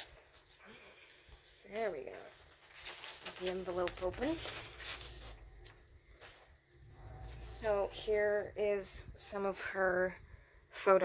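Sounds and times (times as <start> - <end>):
paper rustling and clicking: 2.3 - 6.4.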